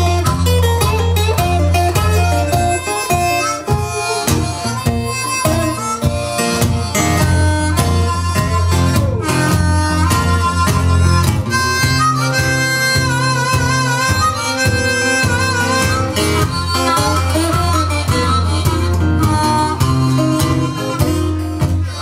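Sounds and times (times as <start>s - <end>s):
acoustic guitar accompaniment: 0.0s - 22.0s
harmonica notes bending: 0.0s - 22.0s.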